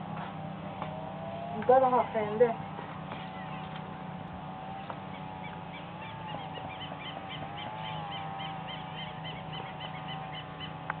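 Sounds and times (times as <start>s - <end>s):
small engine humming and whining: 0.0s - 11.0s
bird chirping: 1.2s - 3.9s, 4.8s - 11.0s.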